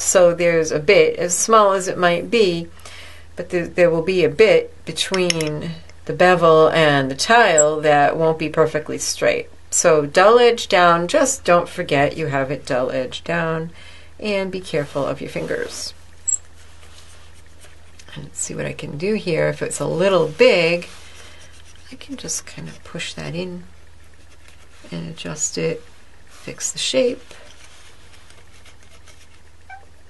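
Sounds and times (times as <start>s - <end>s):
faint steady hum: 0.0s - 30.0s
short high-pitched squeak: 29.7s - 30.0s.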